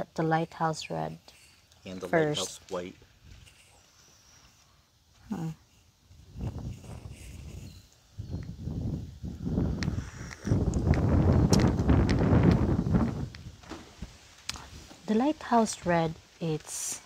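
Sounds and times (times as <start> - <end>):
rumbling rustling on microphone: 6.1 - 16.4.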